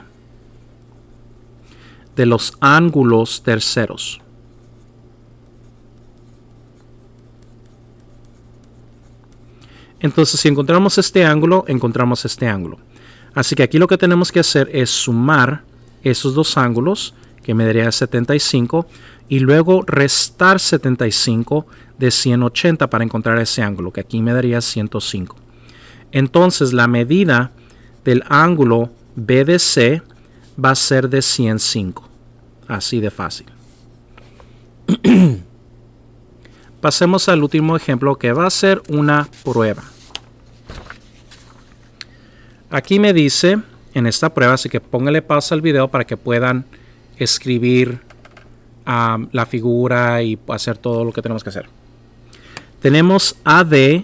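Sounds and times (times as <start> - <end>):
steady low hum: 0.0 - 54.0
pencil scratching on paper: 4.6 - 9.5
man coughing: 34.9 - 35.6.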